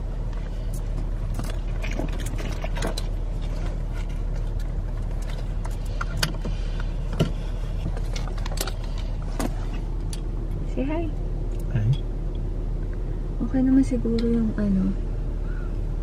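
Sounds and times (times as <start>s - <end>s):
low rumble inside car cabin: 0.0s - 16.0s.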